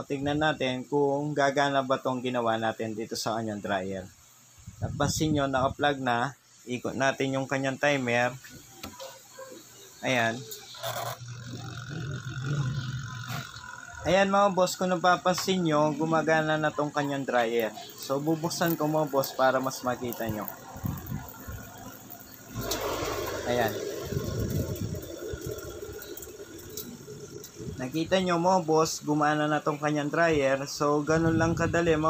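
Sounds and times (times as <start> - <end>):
washing machine motor humming: 10.0 - 29.0.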